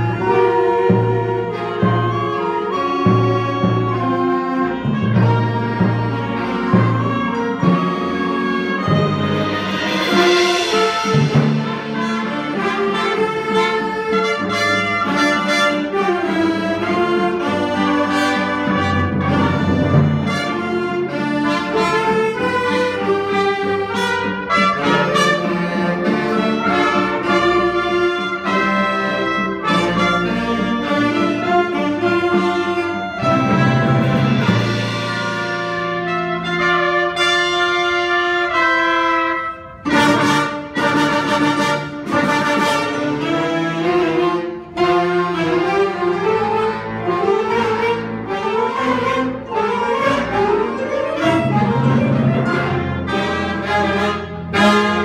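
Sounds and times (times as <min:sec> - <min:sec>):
band playing with brass: 0:00.0 - 0:55.0
sharp percussion hits: 0:08.8 - 0:13.3.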